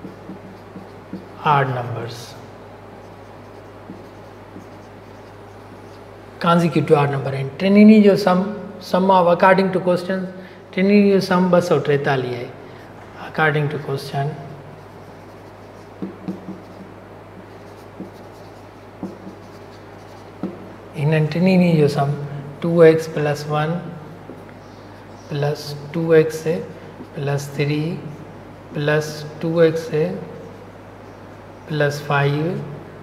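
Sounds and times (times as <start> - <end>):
marker scratching on whiteboard: 0.0 - 1.5, 3.0 - 6.1, 14.8 - 20.7
steady low hum: 0.0 - 33.0.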